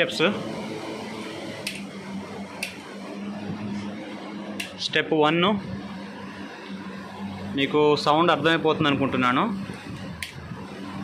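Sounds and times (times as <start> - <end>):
electric motor humming: 0.0 - 11.0.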